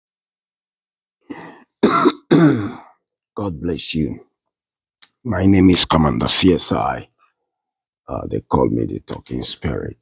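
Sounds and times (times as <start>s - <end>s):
man clearing his throat: 1.8s - 3.0s.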